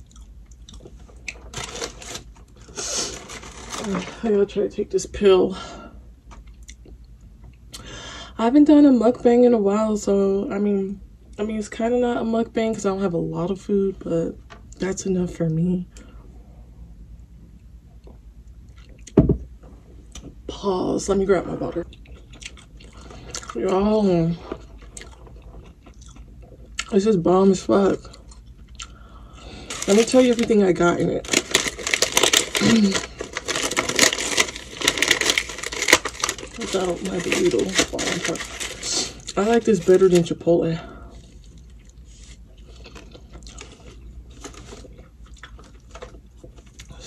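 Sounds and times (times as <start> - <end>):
person chewing food: 0.0 - 3.6, 17.9 - 19.2, 21.9 - 23.6, 24.5 - 26.9, 28.1 - 29.4, 41.2 - 46.9.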